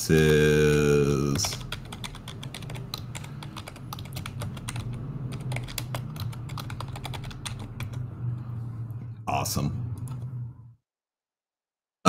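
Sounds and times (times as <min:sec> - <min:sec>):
computer keyboard typing: 0:00.0 - 0:08.0.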